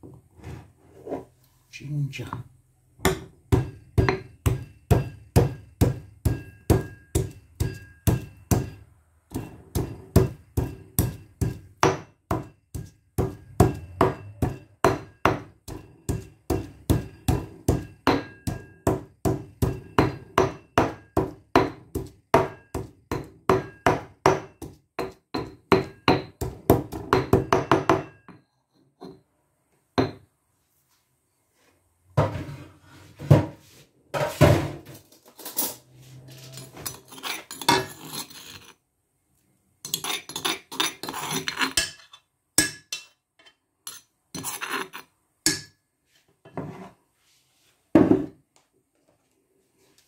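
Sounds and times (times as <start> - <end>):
stone pestle pounding in mortar: 3.0 - 28.4.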